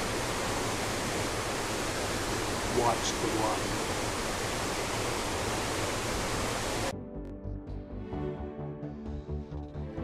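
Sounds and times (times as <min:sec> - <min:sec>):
waterfall rushing: 0:00.0 - 0:06.9
music: 0:06.9 - 0:10.0.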